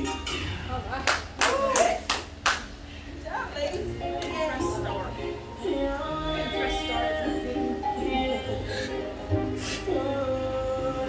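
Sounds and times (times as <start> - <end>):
hands clapping: 1.0 - 2.7.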